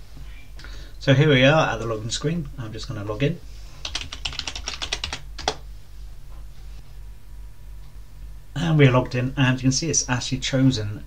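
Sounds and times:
steady low hum: 0:00.0 - 0:11.0
keyboard keystrokes: 0:03.8 - 0:05.6.

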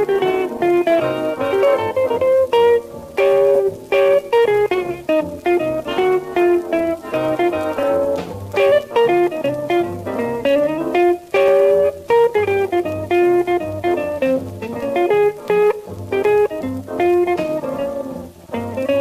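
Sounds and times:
orchestral instrumental music: 0:05.8 - 0:08.9.

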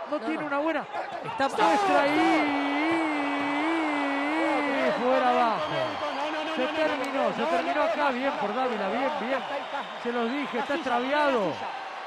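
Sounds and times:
sports commentator shouting: 0:00.0 - 0:11.7.

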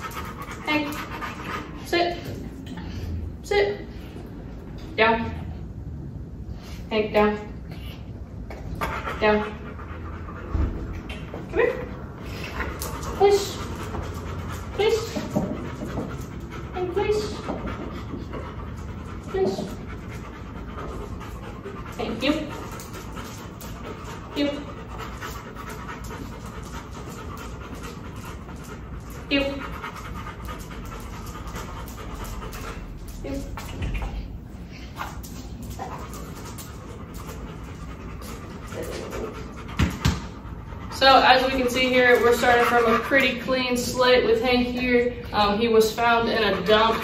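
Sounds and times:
dog panting: 0:00.0 - 0:03.3, 0:08.5 - 0:47.0
dog vocal sounds: 0:08.6 - 0:43.8.

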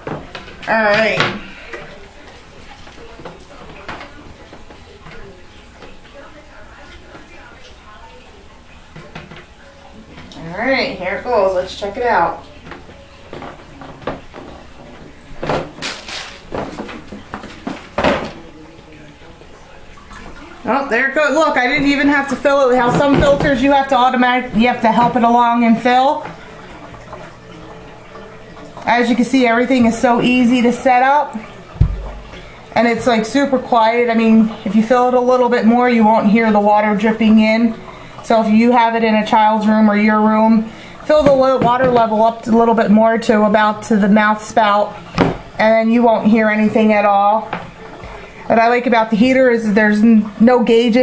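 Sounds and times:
faint background voices: 0:00.0 - 0:41.8, 0:47.4 - 0:48.8
water pouring into tank: 0:11.2 - 0:51.0.

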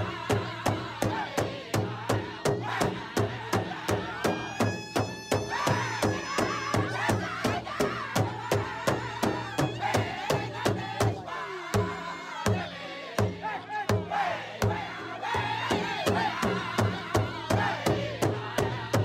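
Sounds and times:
drum beating steadily: 0:00.0 - 0:19.0
singers chanting in high wavering lines: 0:00.0 - 0:19.0.

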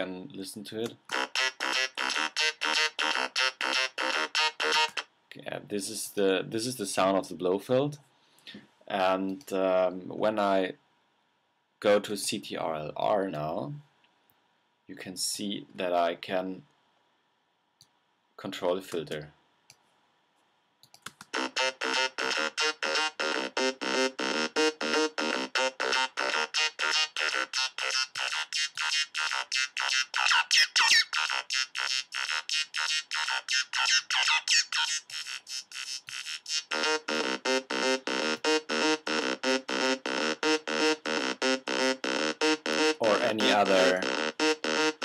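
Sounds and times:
synthesizer repeating short notes: 0:21.4 - 0:45.0.

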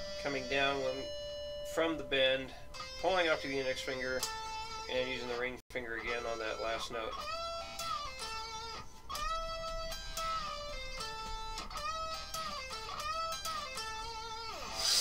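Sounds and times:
electric guitar lead lick: 0:00.0 - 0:05.1, 0:06.0 - 0:15.0.

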